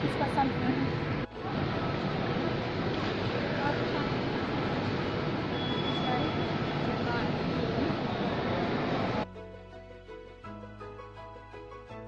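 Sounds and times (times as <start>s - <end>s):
railway station ambient hum: 0.0s - 9.2s.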